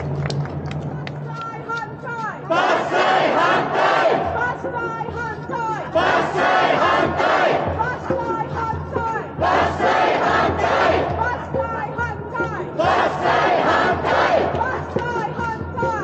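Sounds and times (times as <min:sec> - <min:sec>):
crowd chanting: 0:02.5 - 0:04.6, 0:05.9 - 0:08.0, 0:09.3 - 0:11.2, 0:12.8 - 0:15.0.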